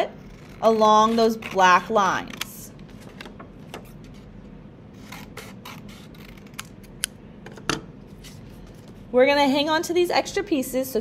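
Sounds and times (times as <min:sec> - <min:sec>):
scissors snipping paper: 0:05.0 - 0:07.1.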